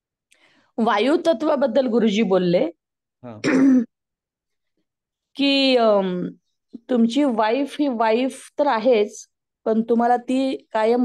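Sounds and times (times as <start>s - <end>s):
person clearing throat: 3.2s - 3.9s.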